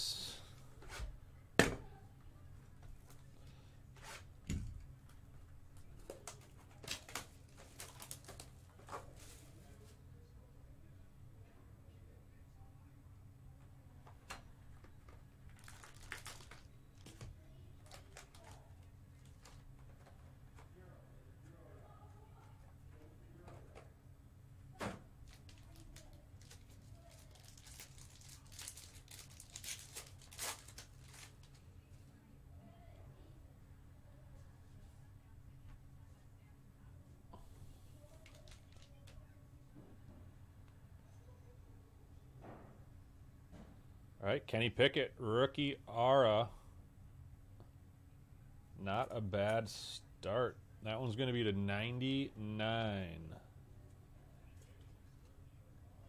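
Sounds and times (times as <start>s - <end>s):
foil pack tearing and crinkling: 6.2s - 8.5s, 15.5s - 17.1s, 25.2s - 31.6s.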